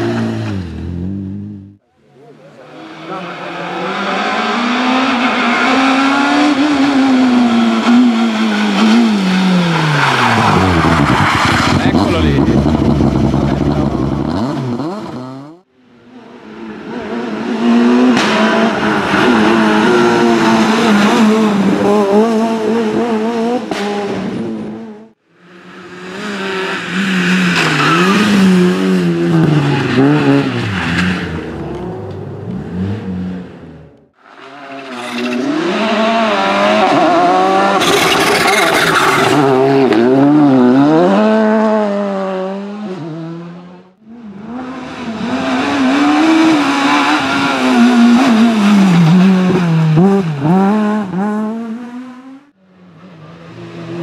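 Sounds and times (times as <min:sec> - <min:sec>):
rally cars passing at speed: 0:02.3 - 0:54.0.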